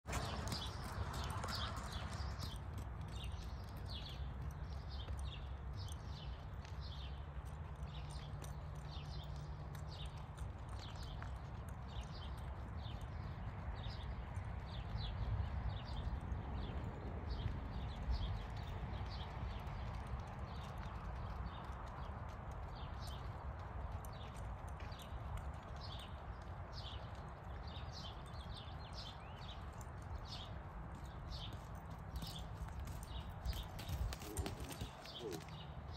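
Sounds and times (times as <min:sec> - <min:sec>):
horse hoofbeats on dirt: 0:00.0 - 0:35.9.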